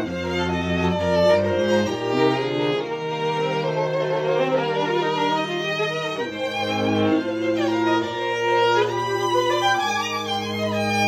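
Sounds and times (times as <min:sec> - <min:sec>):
string quartet playing: 0:00.0 - 0:11.0.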